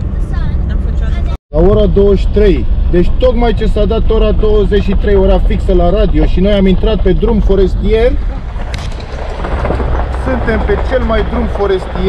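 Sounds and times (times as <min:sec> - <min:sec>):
tyres rumbling on gravel: 0:01.6 - 0:12.0.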